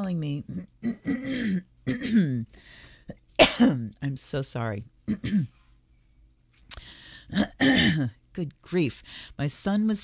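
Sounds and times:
woman clearing her throat: 0.5s - 2.4s, 3.4s - 3.9s, 5.1s - 5.5s, 7.3s - 8.2s.

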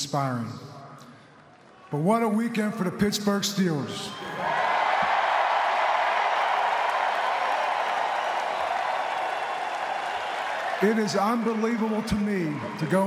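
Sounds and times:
crowd applauding and cheering: 4.1s - 13.0s.

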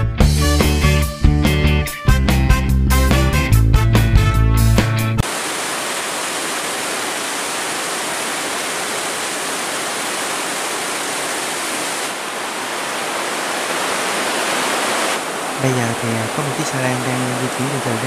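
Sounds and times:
music: 0.0s - 5.2s
water rushing through sluice gate: 5.2s - 18.0s.

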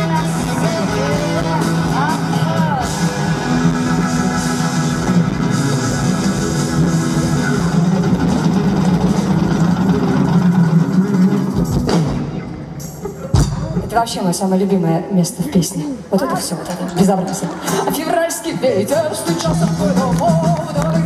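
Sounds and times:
drums: 0.0s - 21.0s
live band playing: 0.0s - 21.0s.

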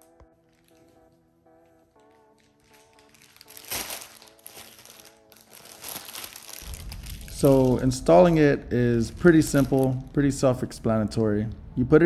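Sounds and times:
plastic wrapping crinkling: 0.0s - 10.6s
soft background music: 0.0s - 12.0s.

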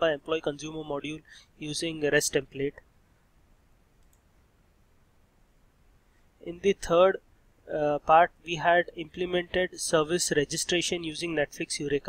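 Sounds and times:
faint computer mouse click: 4.0s - 4.3s.

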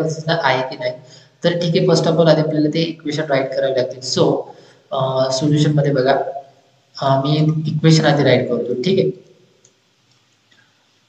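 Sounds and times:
man's voice: 0.0s - 6.4s, 7.0s - 9.1s.

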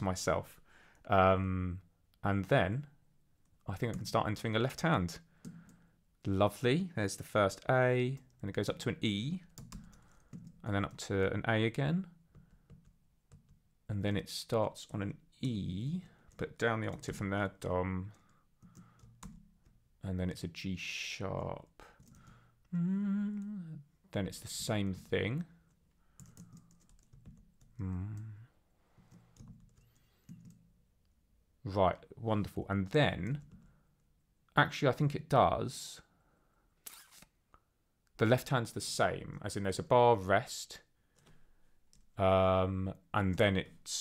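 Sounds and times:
computer keyboard key presses: 26.2s - 27.7s.

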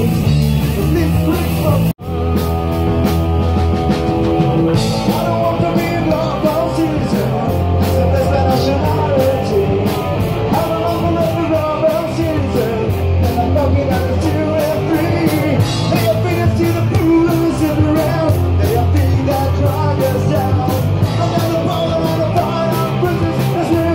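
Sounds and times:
man singing: 0.0s - 3.0s, 4.0s - 23.9s
punk rock band playing live: 0.0s - 23.9s.

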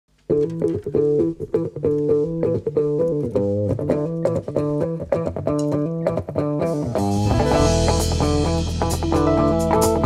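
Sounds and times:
bass guitar: 0.1s - 10.0s
electric guitar riff: 0.2s - 10.0s
drums and cymbals: 6.8s - 10.0s.

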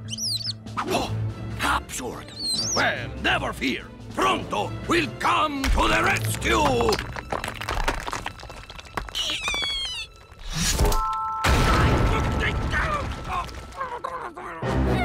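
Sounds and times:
music: 0.0s - 15.0s.

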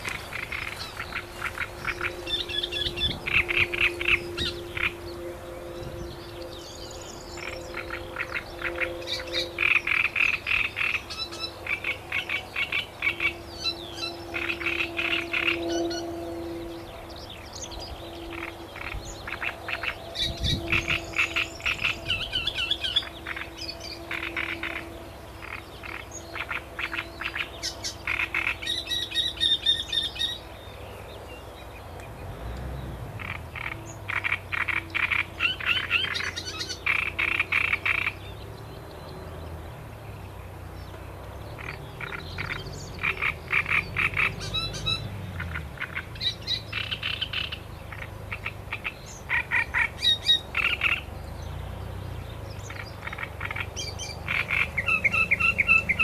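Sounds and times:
frogs croaking: 0.0s - 30.6s, 32.0s - 56.0s.

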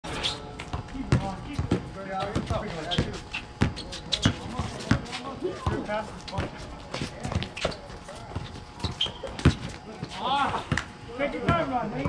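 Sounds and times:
basketball bouncing: 0.6s - 9.8s.

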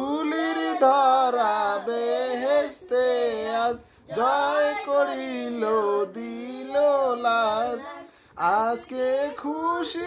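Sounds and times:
child singing unaccompanied: 0.0s - 10.0s.

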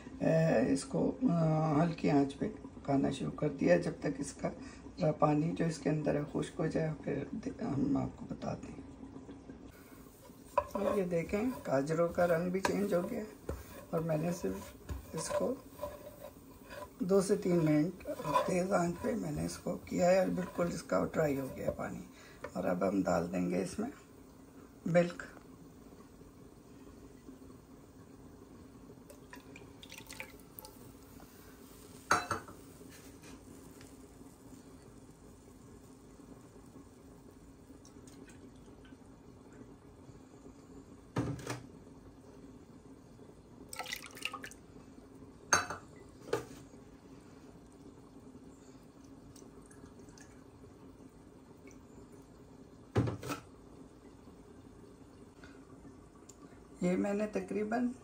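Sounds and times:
milk pouring into pan: 25.8s - 39.6s, 43.6s - 45.6s.

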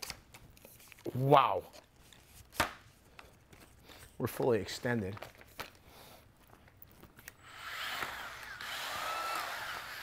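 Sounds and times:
drywall sander motor whining: 7.4s - 10.0s.

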